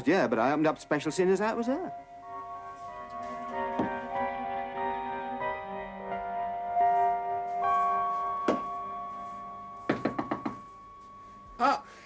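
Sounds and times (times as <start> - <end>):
held note of background music: 0.0 - 12.0.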